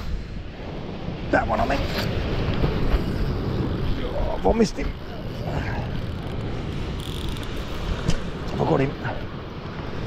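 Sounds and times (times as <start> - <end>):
fishing reel winding: 5.0 - 7.9.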